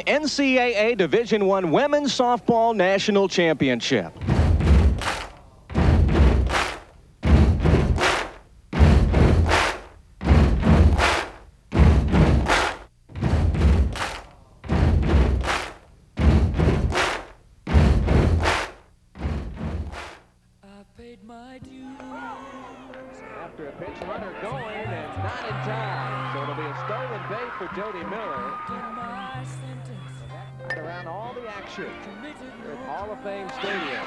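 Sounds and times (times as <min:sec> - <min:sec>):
heavy thumps: 0:04.2 - 0:20.3.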